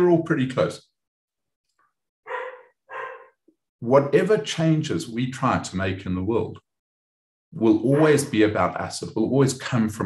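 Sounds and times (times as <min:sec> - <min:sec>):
dog barking: 0:02.3 - 0:03.4.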